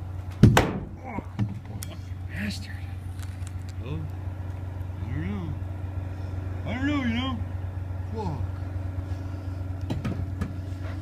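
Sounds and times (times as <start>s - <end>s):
engine idling: 0.0s - 11.0s.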